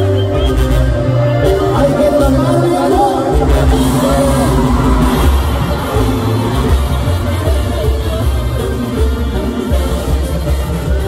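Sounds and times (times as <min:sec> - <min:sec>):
live band with accordion and bass: 0:00.0 - 0:11.0.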